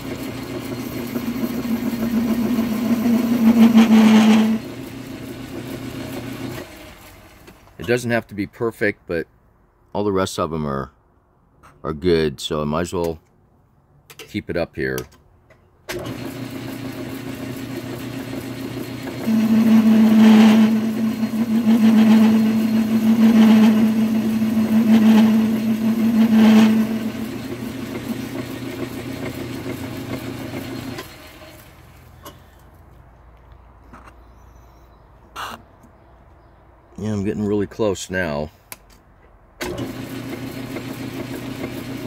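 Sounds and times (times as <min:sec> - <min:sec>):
metal lathe running: 0:00.0 - 0:06.8, 0:16.1 - 0:31.6
tool cutting spinning metal: 0:00.0 - 0:06.9, 0:16.0 - 0:31.6
tool scraping metal: 0:00.9 - 0:04.8, 0:19.2 - 0:28.6.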